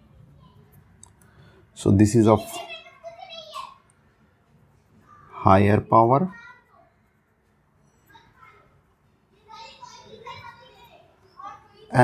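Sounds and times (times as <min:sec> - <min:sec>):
faint child's voice: 0:00.0 - 0:01.0, 0:02.4 - 0:03.9, 0:07.8 - 0:12.0.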